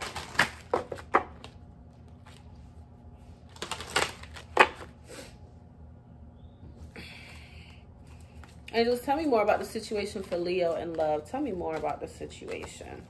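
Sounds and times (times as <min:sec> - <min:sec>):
cards being shuffled: 0:00.0 - 0:02.6, 0:03.4 - 0:04.9, 0:08.1 - 0:13.0.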